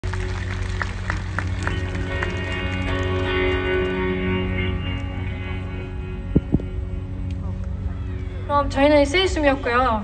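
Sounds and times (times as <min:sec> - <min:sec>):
bass notes: 0:00.9 - 0:09.5
electric guitar notes: 0:01.3 - 0:10.0.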